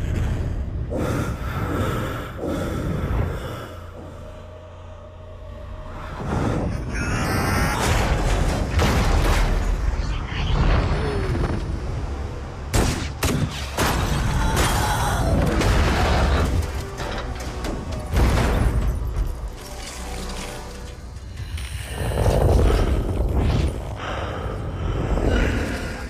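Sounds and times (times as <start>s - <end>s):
film music score: 0.0s - 26.0s.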